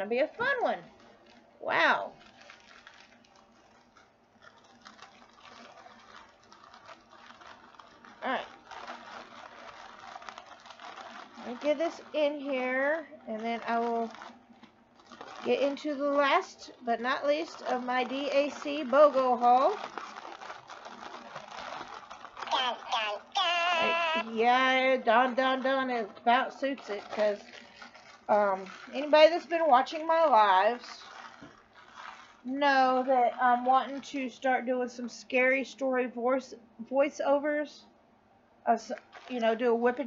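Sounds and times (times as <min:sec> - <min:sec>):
plastic bags rustling and clicking: 0:00.0 - 0:35.8, 0:38.7 - 0:40.0.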